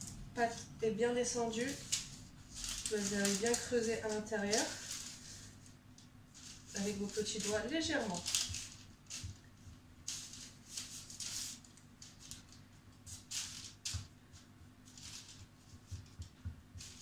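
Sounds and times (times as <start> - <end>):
low steady hum: 0.0 - 17.0
fingers pressing pastry dough: 15.4 - 17.0.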